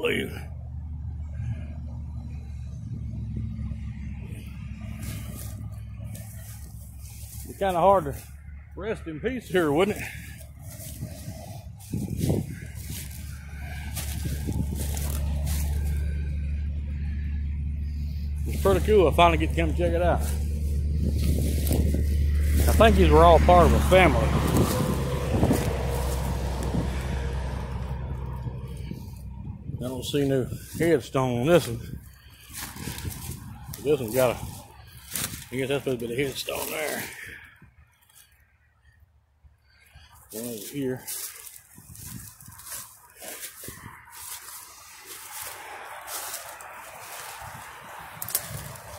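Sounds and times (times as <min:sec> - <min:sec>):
highway traffic passing: 0:00.0 - 0:48.9
rustles and steps in ground cover: 0:04.2 - 0:39.0, 0:39.6 - 0:48.9
person speaking: 0:18.4 - 0:20.4, 0:21.8 - 0:25.9, 0:33.5 - 0:34.6, 0:40.3 - 0:41.1.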